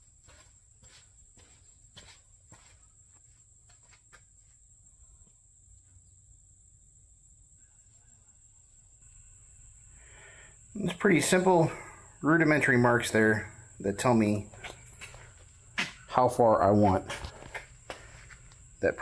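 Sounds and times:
footsteps: 0.0s - 4.6s, 14.0s - 19.0s.

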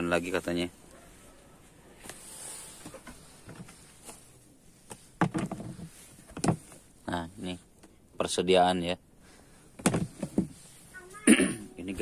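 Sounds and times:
plastic lid knocking and scraping: 5.2s - 6.8s, 9.8s - 10.5s.

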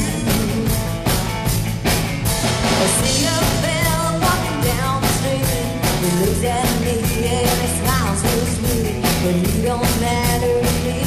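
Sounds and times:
woman singing lead: 0.0s - 1.2s, 2.6s - 11.0s
rock band playing: 0.0s - 11.0s.

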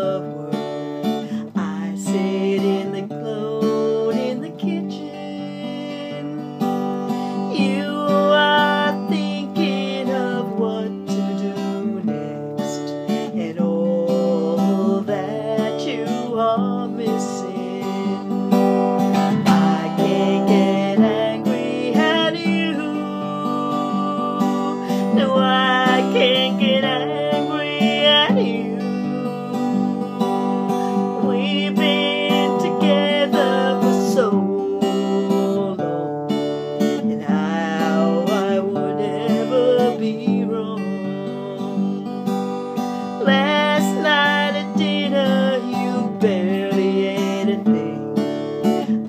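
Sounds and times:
acoustic guitar strumming: 0.0s - 49.0s
woman singing: 0.0s - 49.0s.

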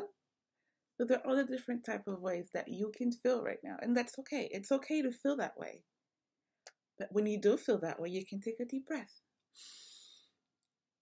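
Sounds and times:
woman taking deep breath: 9.6s - 10.4s.

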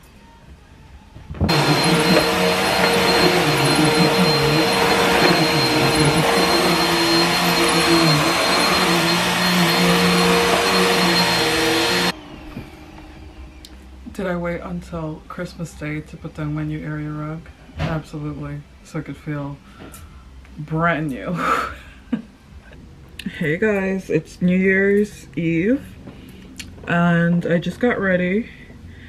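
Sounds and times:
upright vacuum cleaner running: 1.5s - 13.6s.

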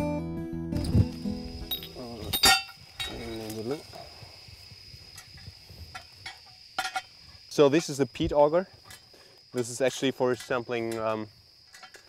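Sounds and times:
acoustic guitar music: 0.0s - 2.7s
high insect drone: 0.7s - 12.0s.

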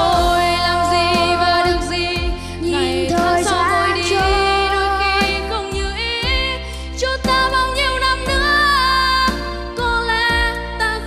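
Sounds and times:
instrumental backing with drums: 0.0s - 10.8s.

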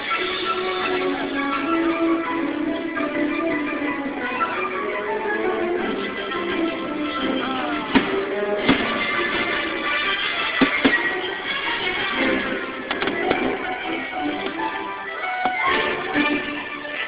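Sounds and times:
music over loudspeakers: 0.0s - 17.0s
firework bangs: 7.9s - 9.6s, 10.4s - 11.2s.

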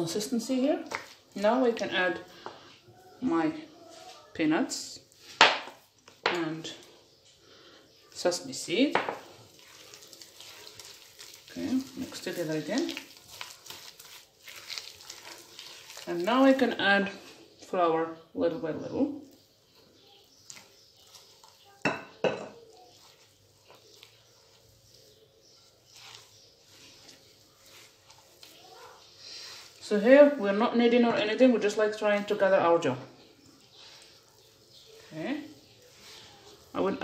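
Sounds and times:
hand rustling cookie dough: 0.0s - 6.2s, 6.8s - 17.6s, 19.2s - 21.9s, 22.6s - 37.0s
glass cup clinking against bowl: 21.9s - 22.6s.

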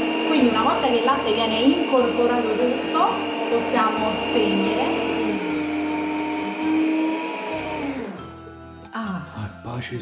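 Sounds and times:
electric stand mixer whirring: 0.0s - 8.5s.

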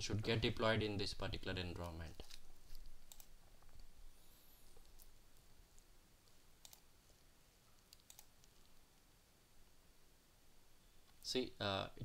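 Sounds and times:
faint clicks: 4.8s - 6.8s.

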